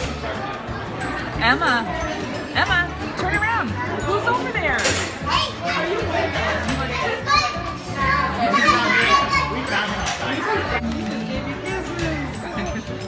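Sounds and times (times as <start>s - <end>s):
children shouting and chattering: 0.0s - 13.0s
music playing: 0.0s - 13.0s.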